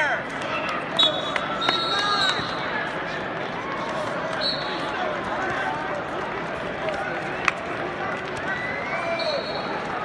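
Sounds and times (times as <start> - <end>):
crowd voices calling out: 0.0 - 10.0.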